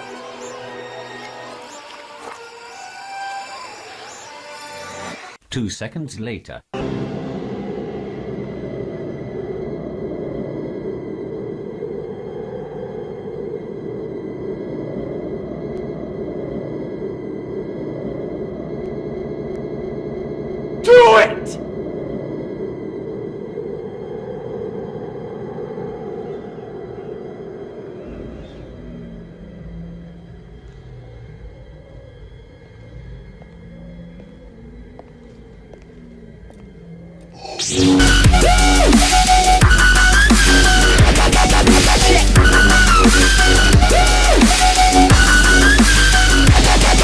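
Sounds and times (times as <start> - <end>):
dark rumbling soundtrack drone: 0.0 - 5.2, 6.8 - 47.0
ominous low film score: 0.0 - 5.4, 6.7 - 47.0.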